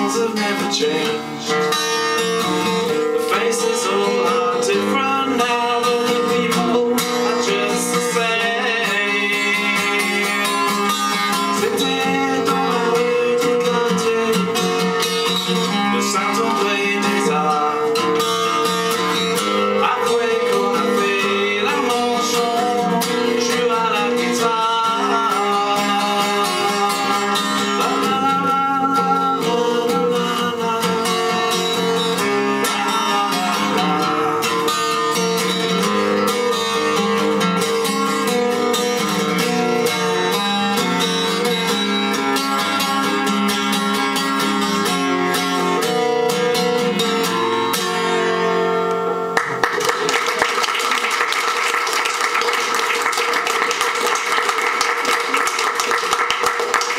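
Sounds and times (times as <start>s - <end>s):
acoustic guitar playing: 0.0s - 56.9s.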